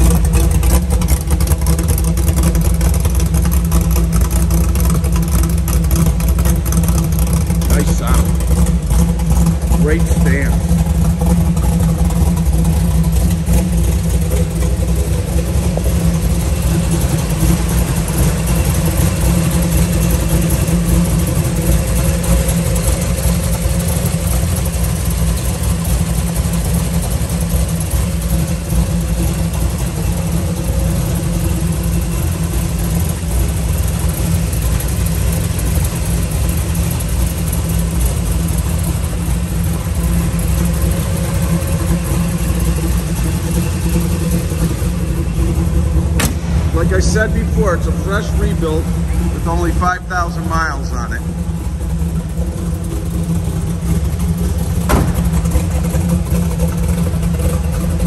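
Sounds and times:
car engine idling: 0.0s - 58.0s.

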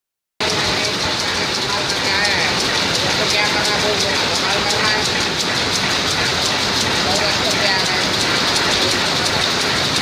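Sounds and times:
loom rhythmic mechanical clatter: 0.4s - 10.0s.

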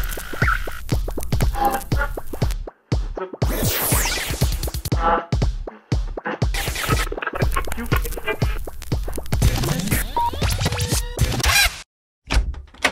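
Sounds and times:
music with a beat: 0.0s - 11.4s
record scratching: 0.0s - 11.9s.

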